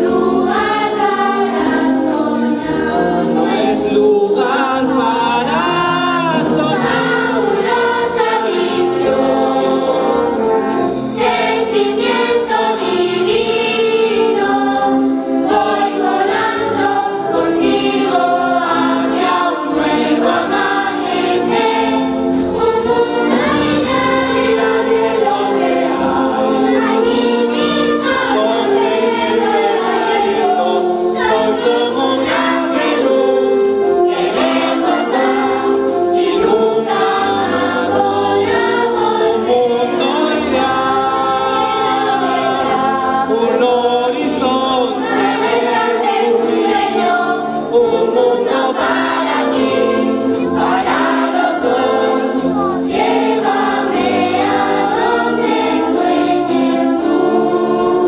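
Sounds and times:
band accompaniment: 0.0 - 58.0
choir singing: 0.0 - 58.0.

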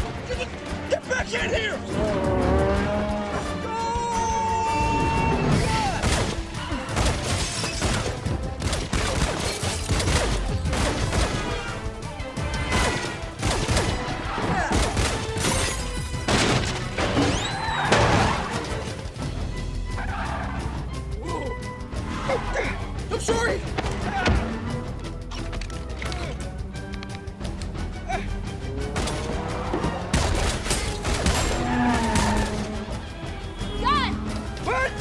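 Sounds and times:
film score music: 0.0 - 35.0.

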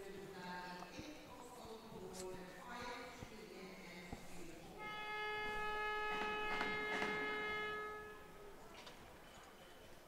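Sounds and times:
faint rink background noise: 0.0 - 10.0
horn single steady note: 4.4 - 8.6.

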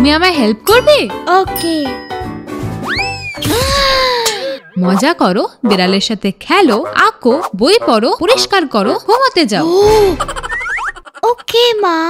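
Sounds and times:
rising whistle-like slides: 2.8 - 3.4.

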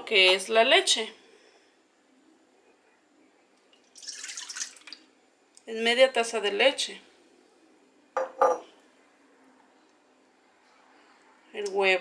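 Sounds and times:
glass containers clinking: 8.2 - 8.7.

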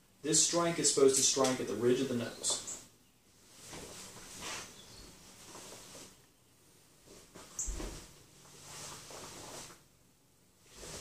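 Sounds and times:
clothing rustling and swishing: 3.4 - 6.2, 6.9 - 9.9, 10.6 - 11.0.

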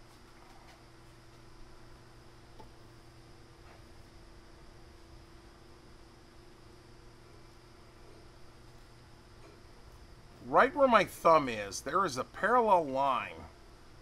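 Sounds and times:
low hum and hiss: 0.0 - 14.0.

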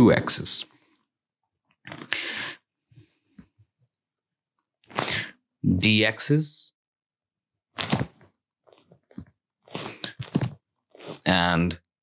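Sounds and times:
person speaking: 0.0 - 0.7
person breathing into microphone: 2.0 - 3.2.

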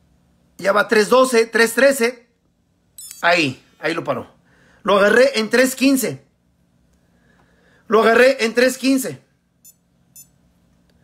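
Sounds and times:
short electronic beeps: 3.0 - 3.2, 9.6 - 10.4.

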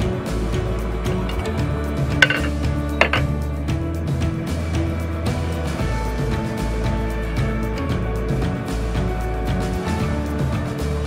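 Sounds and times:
background music: 0.0 - 11.0
metal pan lid clinking: 1.3 - 1.6, 2.2 - 3.3.

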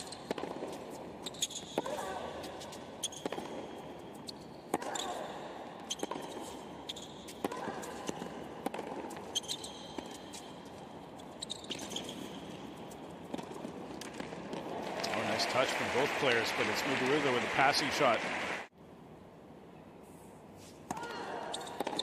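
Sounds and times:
shoe squeaks on court: 0.0 - 1.8, 2.4 - 7.4, 9.1 - 13.1, 21.5 - 22.0
racket striking tennis ball: 0.0 - 3.8, 4.7 - 10.5, 20.8 - 22.0.

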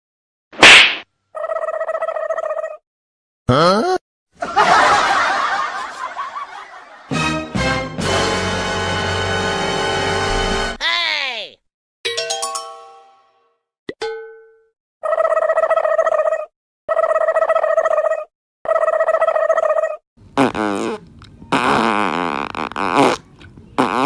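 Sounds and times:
cartoon fart sounds: 3.5 - 4.0, 20.4 - 24.0
tonal cartoon effect: 12.1 - 13.5.

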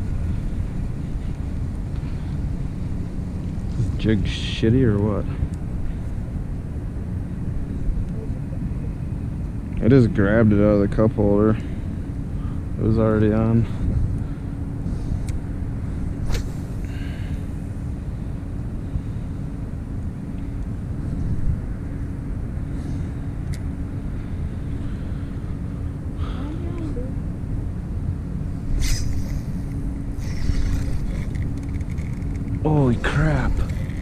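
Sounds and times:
boat motor rumbling: 24.2 - 34.0.

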